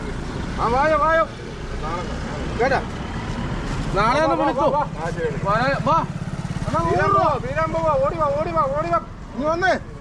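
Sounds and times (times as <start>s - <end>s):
car and scooter passing: 0.0s - 10.0s
road traffic rumble: 0.0s - 10.0s.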